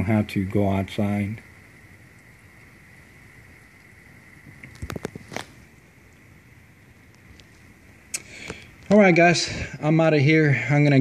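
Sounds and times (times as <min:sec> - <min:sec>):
rain hiss: 0:00.0 - 0:11.0.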